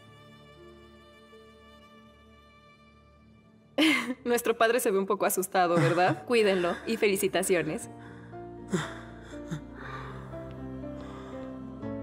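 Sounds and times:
soft background music: 0.0 - 12.0
woman gasping breaths: 7.9 - 11.6.

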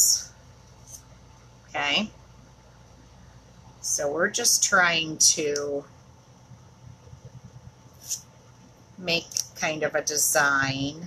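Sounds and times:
soft hiss: 5.4 - 10.9.

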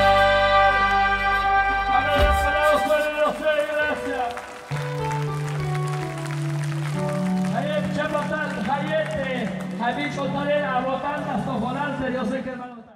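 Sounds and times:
live band music: 0.0 - 11.3
man speaking over sound system: 1.9 - 4.5, 7.5 - 12.9.

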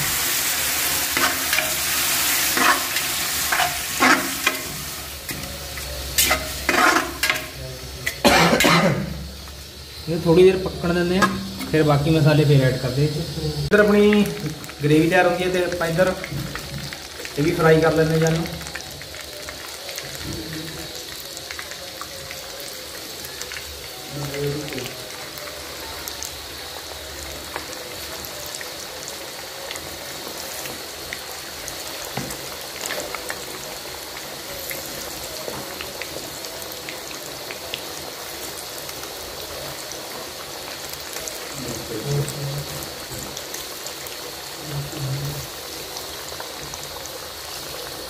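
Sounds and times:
oil crackling and popping: 0.0 - 10.1, 13.7 - 48.0
chicken deep-frying in oil: 0.0 - 48.0.

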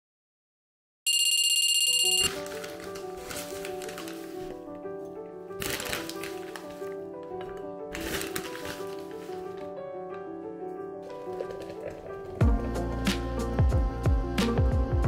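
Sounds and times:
alarm clock beeping: 1.1 - 2.3
background music with held notes: 2.2 - 15.0.

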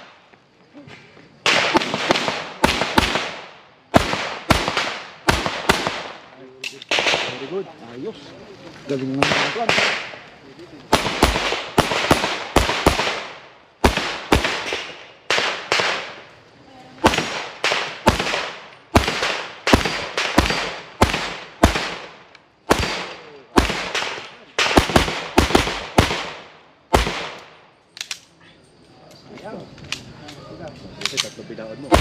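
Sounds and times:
pistol shots with echo: 1.4 - 7.6, 9.2 - 10.2, 10.9 - 16.2, 17.0 - 27.7.

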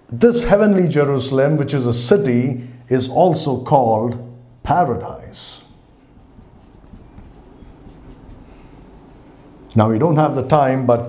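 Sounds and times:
marker writing on whiteboard: 5.1 - 9.7.

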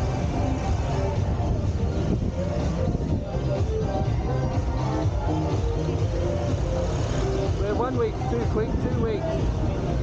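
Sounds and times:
motorbike engine and road noise: 0.0 - 10.0.

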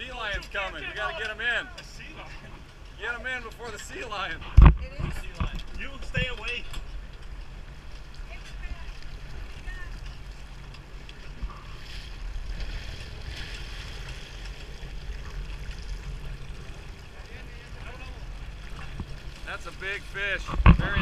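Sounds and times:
boat engine rumbling: 0.0 - 21.0
wind on microphone: 4.4 - 6.4, 20.4 - 21.0.

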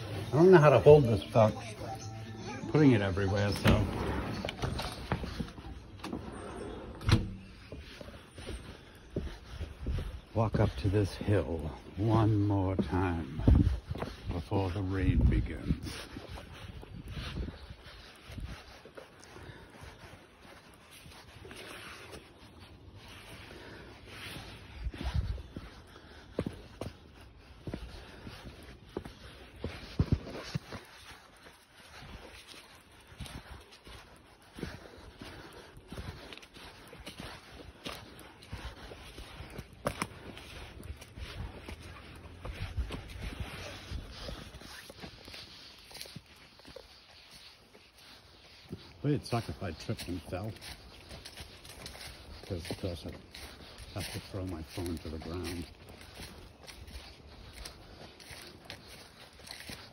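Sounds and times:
footsteps crunching through leaves: 0.0 - 59.9.

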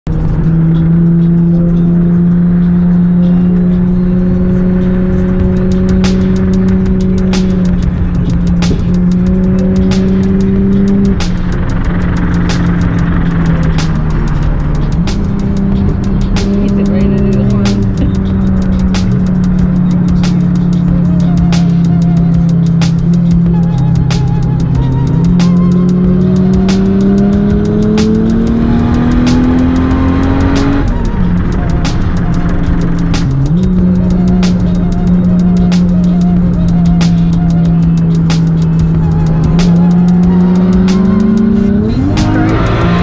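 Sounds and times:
car engine droning: 0.0 - 43.0
music playing: 0.1 - 43.0.

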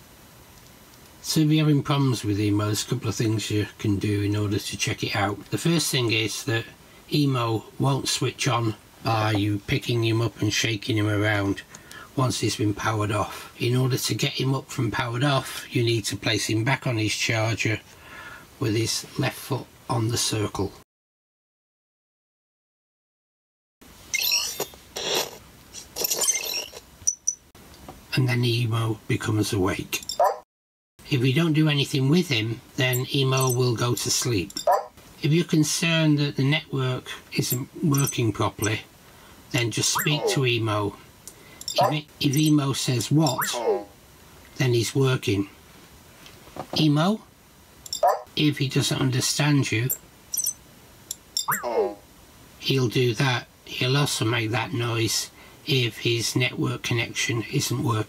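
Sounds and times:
robot high chirps: 37.9 - 38.8, 39.9 - 40.4, 41.7 - 42.5, 43.2 - 43.9, 47.9 - 48.2, 50.4 - 50.6, 51.4 - 52.0
high electronic chirps: 39.9 - 40.3, 43.2 - 43.7, 50.3 - 50.6, 51.4 - 51.9
quick high beeps: 43.3 - 43.5, 50.3 - 50.6, 51.4 - 51.7.

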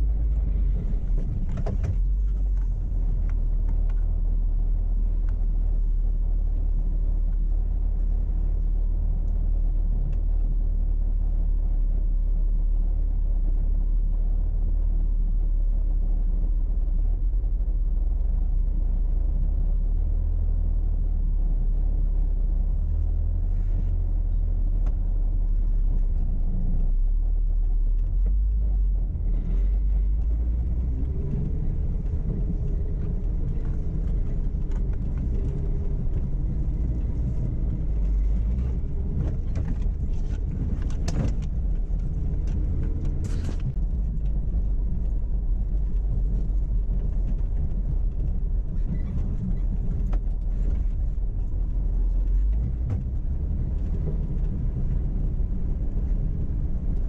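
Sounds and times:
off-road vehicle engine rumbling: 0.0 - 57.0.

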